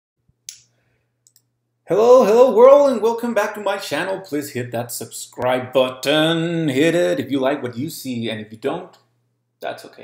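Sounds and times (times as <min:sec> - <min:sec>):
man speaking: 0:01.9 - 0:10.0.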